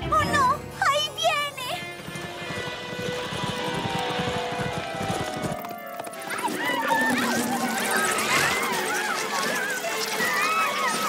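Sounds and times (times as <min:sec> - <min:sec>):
background music: 0:00.0 - 0:11.0
pony hooves galloping: 0:01.3 - 0:11.0
high wavering voice-like cries: 0:06.1 - 0:11.0.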